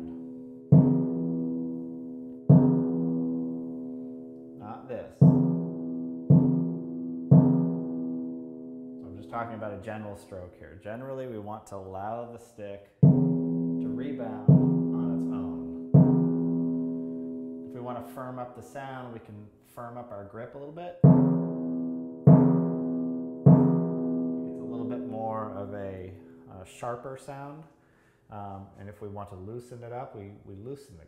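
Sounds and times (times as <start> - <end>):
timpani strokes ringing: 0.0 - 4.6, 5.2 - 9.1, 13.0 - 18.1, 21.0 - 26.5.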